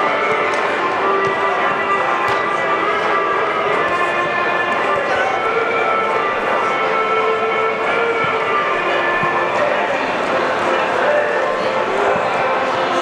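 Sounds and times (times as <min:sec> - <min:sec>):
indistinct voices: 0:00.0 - 0:13.0
stadium background: 0:00.0 - 0:13.0.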